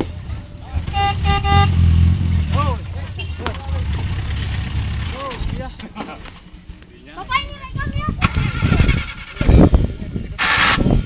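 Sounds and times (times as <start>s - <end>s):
off-road vehicle engine running: 0.0s - 6.5s, 8.0s - 11.0s.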